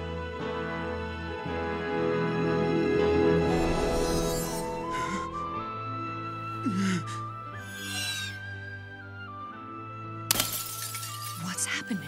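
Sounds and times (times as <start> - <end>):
sustained soundtrack music: 0.0 - 12.0
shattering crash: 10.3 - 11.4
glassy clinks: 10.3 - 11.6.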